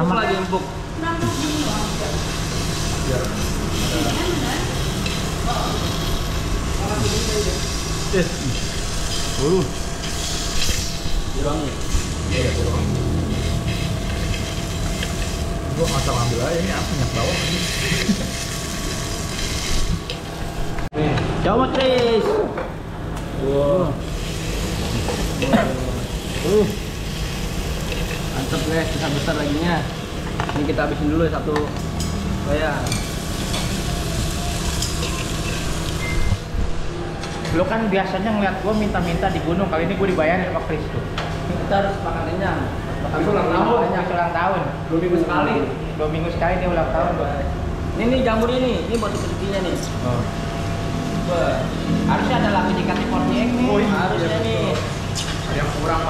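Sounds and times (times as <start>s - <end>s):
ventilation hum: 0.0s - 56.0s
meat sizzling on grill pan: 1.2s - 20.8s, 24.0s - 30.5s, 32.0s - 36.4s.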